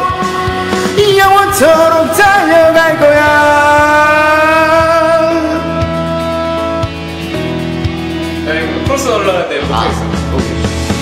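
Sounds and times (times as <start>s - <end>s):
man singing wordless ad-lib: 0.0s - 6.0s
karaoke ballad backing track: 0.0s - 11.0s.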